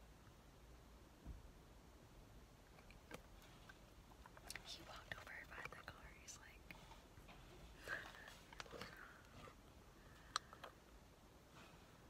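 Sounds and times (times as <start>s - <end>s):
faint whispered voice: 4.5s - 6.9s.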